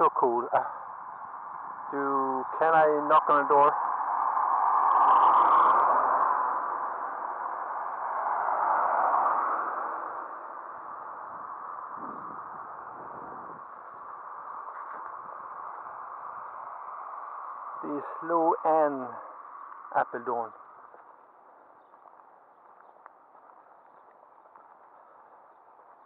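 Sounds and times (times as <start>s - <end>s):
steady outdoor hiss: 0.0s - 26.0s
car passing on road: 2.6s - 26.0s.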